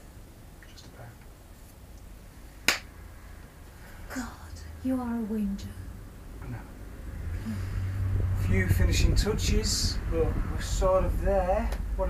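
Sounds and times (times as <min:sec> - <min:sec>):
high five palm slap: 0:02.6 - 0:02.9.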